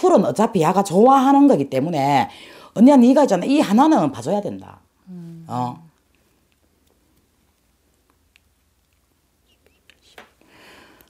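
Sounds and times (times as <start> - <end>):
soft breath drawn in: 10.4 - 11.0.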